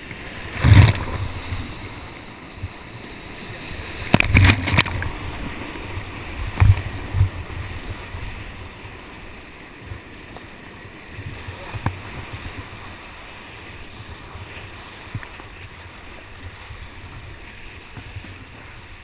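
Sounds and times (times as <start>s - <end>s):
rushing whitewater: 0.0s - 19.0s
water thumping against boat: 0.5s - 1.7s, 4.0s - 5.6s, 6.4s - 7.5s.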